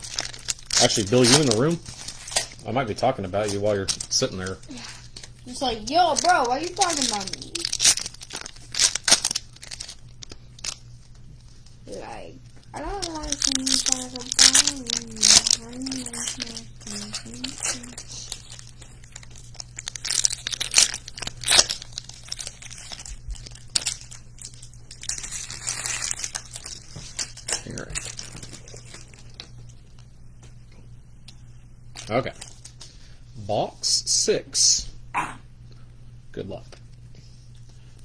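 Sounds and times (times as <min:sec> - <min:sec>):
foil wrapper crinkling: 0:00.0 - 0:30.1, 0:31.9 - 0:33.0.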